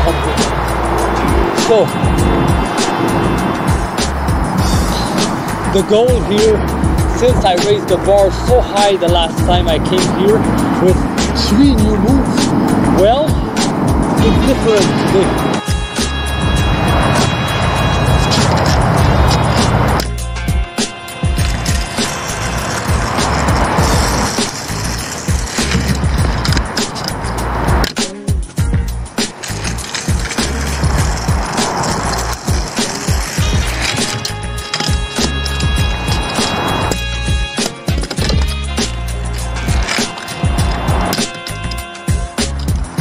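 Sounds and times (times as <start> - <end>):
background music: 0.0 - 43.0
skate wheels rolling on concrete: 0.0 - 43.0.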